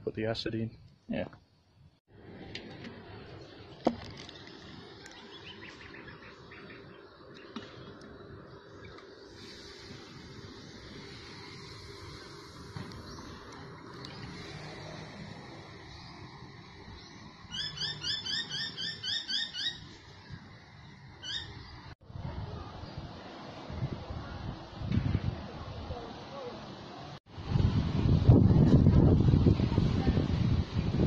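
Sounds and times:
steady outdoor hiss: 0:00.0 - 0:31.0
wind buffeting microphone: 0:22.0 - 0:26.2, 0:27.3 - 0:31.0.

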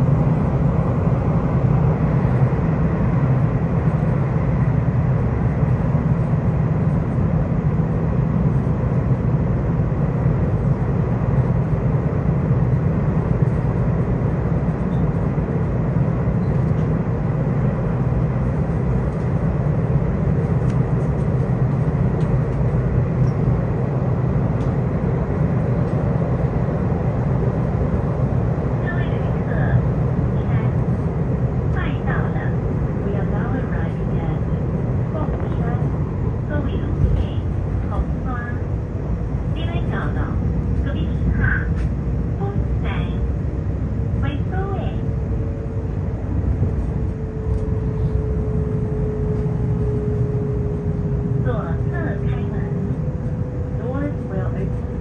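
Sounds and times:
train cabin rumble: 0:00.0 - 0:55.0
onboard announcement: 0:28.8 - 0:30.8, 0:31.7 - 0:38.7, 0:39.5 - 0:43.3, 0:44.2 - 0:45.1, 0:51.4 - 0:55.0.

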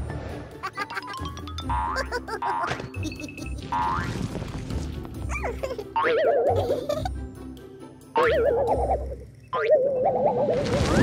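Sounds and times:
light background music: 0:00.0 - 0:09.5.

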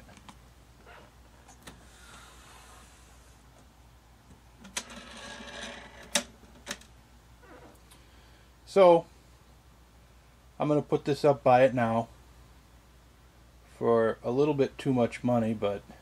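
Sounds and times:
rubbing and handling noise: 0:00.0 - 0:03.7, 0:04.3 - 0:07.9.

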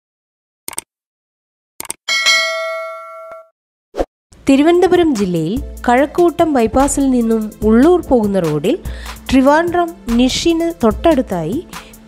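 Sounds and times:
bright bell chime: 0:02.1 - 0:03.5.

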